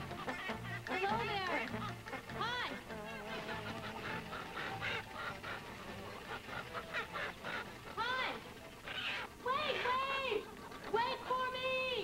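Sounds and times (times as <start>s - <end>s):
poultry squawking and honking: 0.0s - 12.0s.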